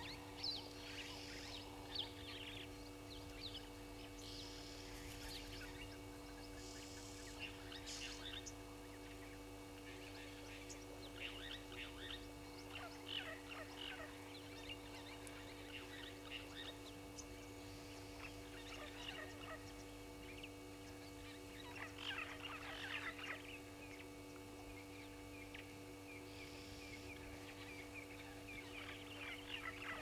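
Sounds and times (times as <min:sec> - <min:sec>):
low electrical hum: 0:00.0 - 0:30.0
wild birds chirping: 0:00.0 - 0:30.0.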